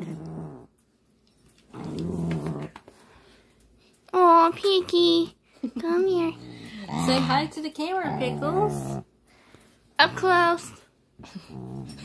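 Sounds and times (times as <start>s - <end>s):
small dog growling low: 0.0s - 0.7s, 1.7s - 2.8s, 6.2s - 9.1s, 11.2s - 12.0s.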